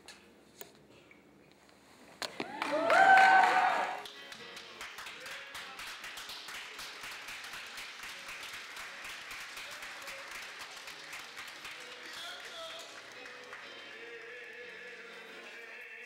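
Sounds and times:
faint music: 0.0 - 16.0
crowd clapping: 2.3 - 15.8.

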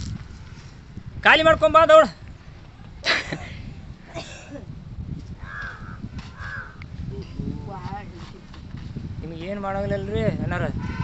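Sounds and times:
crow cawing: 5.4 - 6.8.

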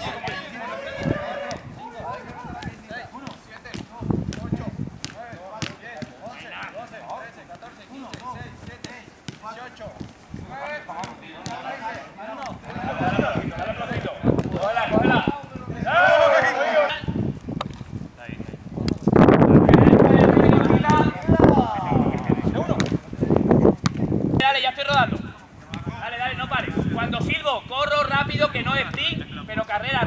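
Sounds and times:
players shouting: 0.0 - 3.6, 10.5 - 17.2
football kicks thudding: 0.1 - 6.3, 7.5 - 10.2, 11.0 - 12.8, 13.4 - 15.0, 22.0 - 23.1.

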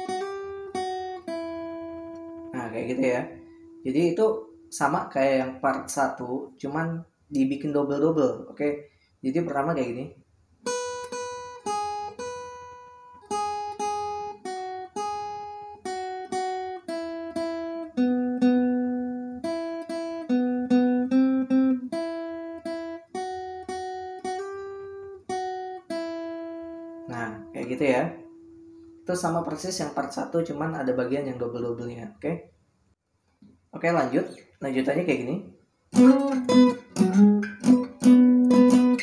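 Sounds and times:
acoustic guitar melody: 0.0 - 6.5, 10.6 - 32.2, 35.9 - 39.0.

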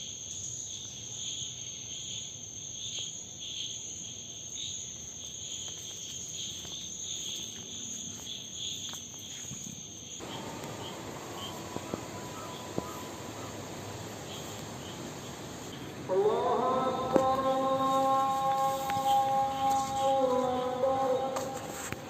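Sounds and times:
night insects chirring: 0.0 - 22.0.

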